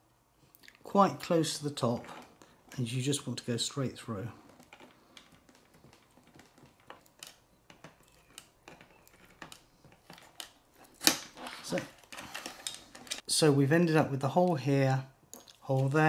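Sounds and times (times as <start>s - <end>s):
hard plastic clicks and creaks: 4.4s - 13.2s.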